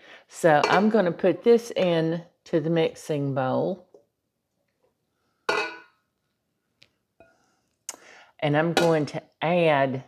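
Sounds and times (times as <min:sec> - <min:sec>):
spatula clinking glass bowl: 0:05.5 - 0:06.0.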